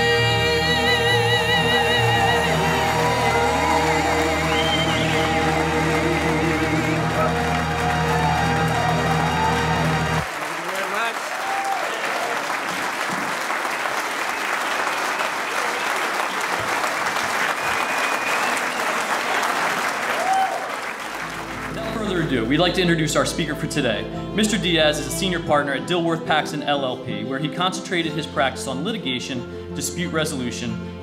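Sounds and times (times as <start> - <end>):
crowd applauding: 2.0 - 22.8.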